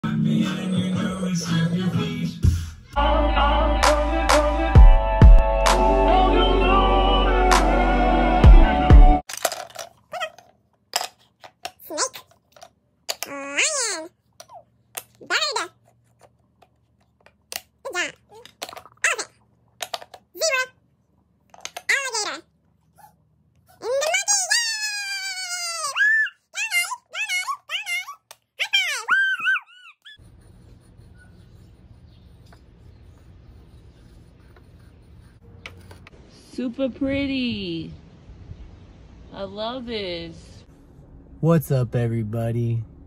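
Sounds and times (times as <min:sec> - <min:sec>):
short high-pitched voice-like sounds: 0:13.2 - 0:14.1
high-pitched squealing cries: 0:23.8 - 0:30.2.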